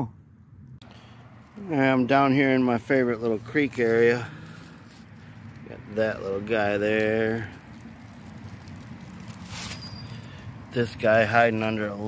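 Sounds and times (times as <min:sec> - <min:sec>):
rustle in dry leaves: 0:01.3 - 0:12.0.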